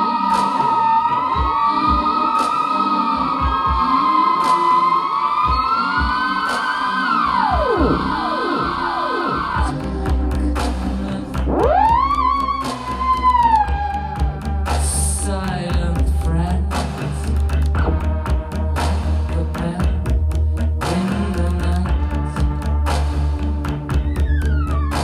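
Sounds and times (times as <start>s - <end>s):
theremin wavering tones: 0.0s - 19.9s
low bass pulse: 7.3s - 25.0s.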